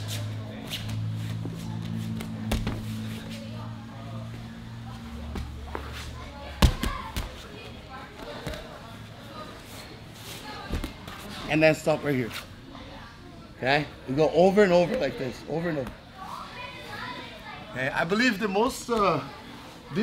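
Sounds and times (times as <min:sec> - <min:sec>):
steady low hum: 0:00.0 - 0:14.3
bodies thudding on mat: 0:02.4 - 0:03.0.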